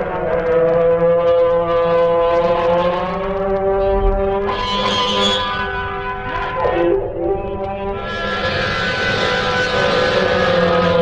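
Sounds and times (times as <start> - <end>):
steady low drone: 0.0 - 11.0
sliding held guitar tones: 1.0 - 11.0
rush of noise: 3.7 - 11.0.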